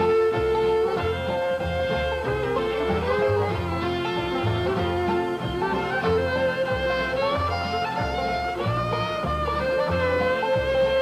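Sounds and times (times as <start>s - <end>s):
acoustic guitar: 0.0s - 11.0s
fiddle bowing long notes: 0.0s - 11.0s
low bass notes: 0.0s - 11.0s.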